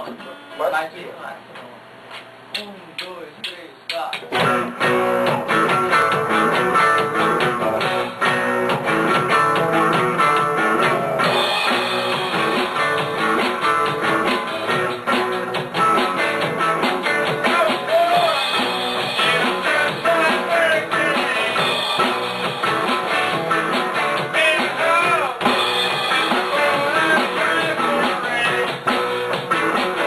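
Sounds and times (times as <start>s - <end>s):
separate drum strikes: 2.5s - 30.0s
rock band playing live: 4.2s - 30.0s.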